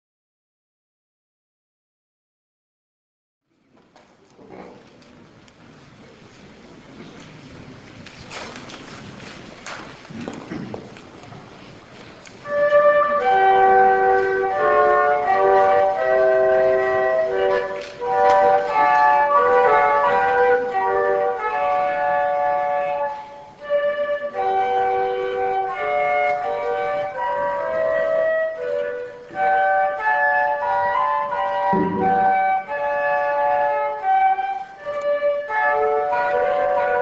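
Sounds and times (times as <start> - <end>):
flute trio playing: 12.4 - 37.0.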